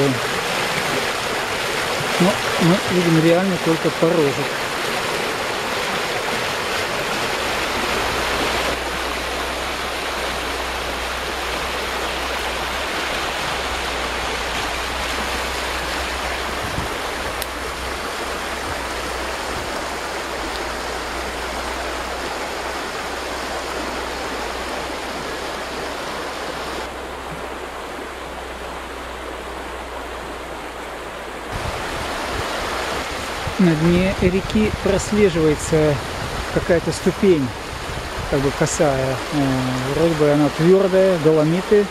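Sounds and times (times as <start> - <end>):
low rumble of water: 0.0 - 41.9
river rushing over rapids: 0.0 - 41.9.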